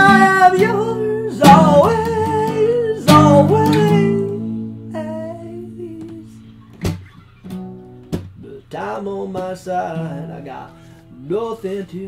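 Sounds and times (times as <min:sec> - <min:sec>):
acoustic guitar strum: 0:00.0 - 0:11.5.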